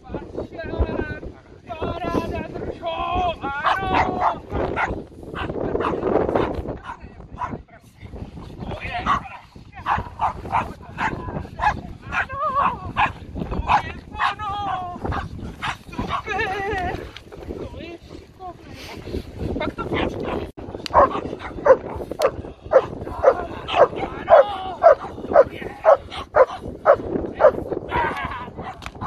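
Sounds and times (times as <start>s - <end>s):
puppy barking and yipping: 23.7s - 26.6s.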